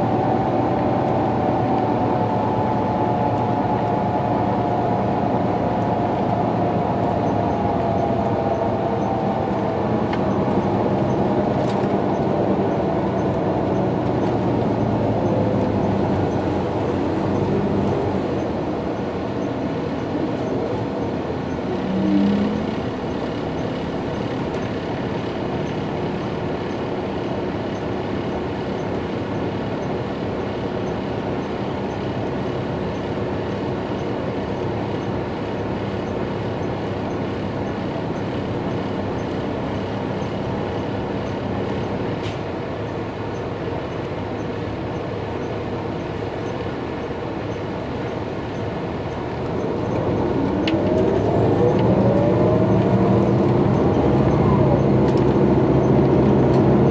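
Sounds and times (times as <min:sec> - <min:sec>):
bus cabin engine noise: 0:00.0 - 0:56.9
loud squeal-like tone: 0:21.7 - 0:22.7.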